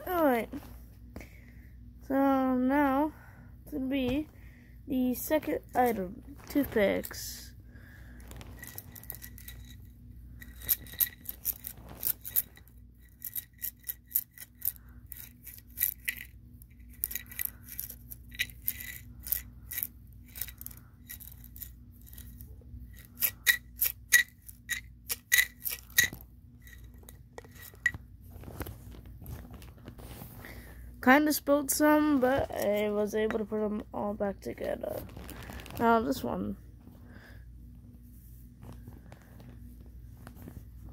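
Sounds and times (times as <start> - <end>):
toothpicks rattling in container: 8.5 - 28.0.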